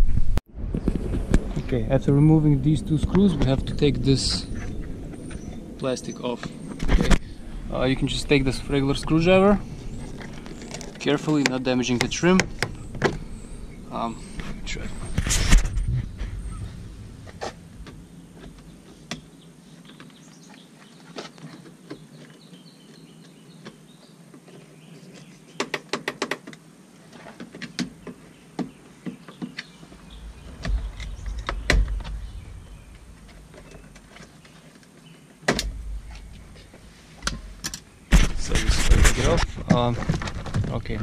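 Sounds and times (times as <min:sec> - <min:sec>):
low rumble: 0:00.0 - 0:19.4, 0:29.8 - 0:34.3, 0:35.6 - 0:41.0.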